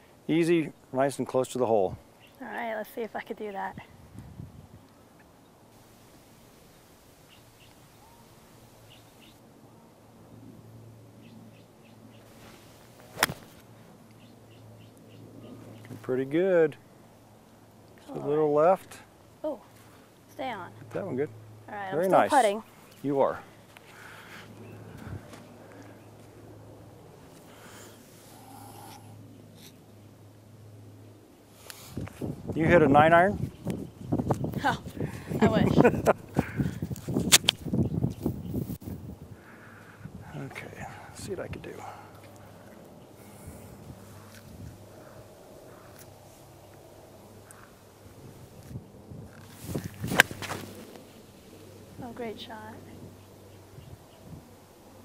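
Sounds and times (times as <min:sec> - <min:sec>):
soft rustling: 0:12.3 - 0:13.7
swish of golf swing: 0:12.4 - 0:13.6, 0:49.6 - 0:51.0
golf club striking ball: 0:13.1 - 0:13.6, 0:50.0 - 0:50.7.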